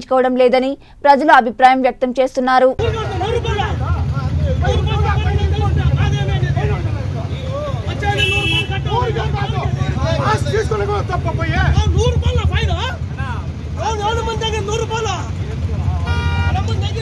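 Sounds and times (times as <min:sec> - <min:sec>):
low engine rumble: 0:02.8 - 0:17.0
men talking: 0:02.8 - 0:17.0
vehicle horn toot: 0:07.9 - 0:09.6, 0:16.0 - 0:17.0.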